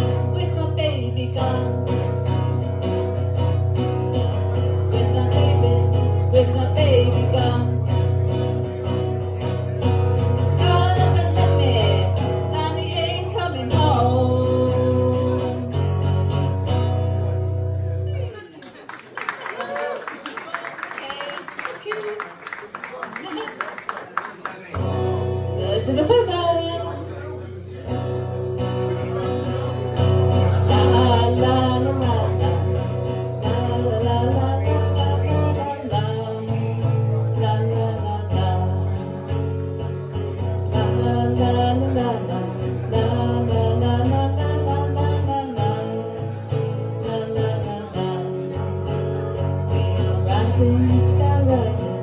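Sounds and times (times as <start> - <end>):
woman singing: 0.0 - 3.7, 4.3 - 8.3, 10.4 - 15.8, 25.5 - 27.1, 30.5 - 39.4, 40.6 - 48.9, 49.7 - 52.0
acoustic guitar strumming: 0.0 - 18.3, 24.7 - 52.0.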